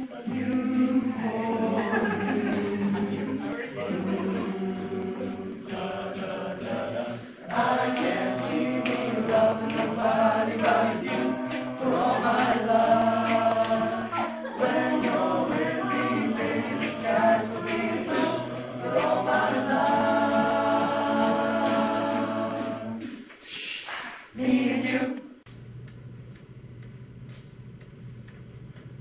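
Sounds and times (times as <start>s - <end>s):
a cappella choir singing in harmony: 0.2s - 23.3s, 24.1s - 25.6s.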